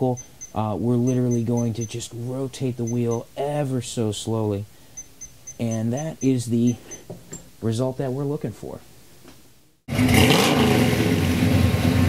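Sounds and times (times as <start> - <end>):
vehicle engine revving: 9.9 - 12.0.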